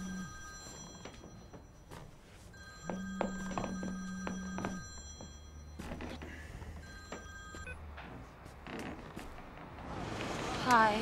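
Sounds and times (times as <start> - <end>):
mobile phone ringtone: 0.0 - 7.9.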